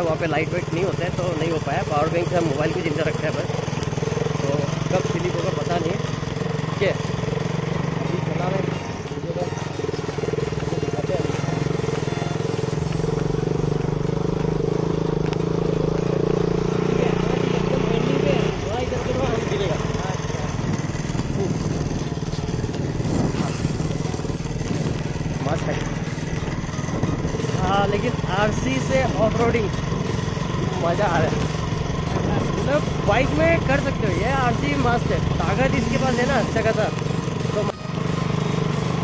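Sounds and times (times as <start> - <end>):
motorcycle engine running: 0.0 - 39.0
road rumble: 0.0 - 39.0
wind: 0.0 - 39.0.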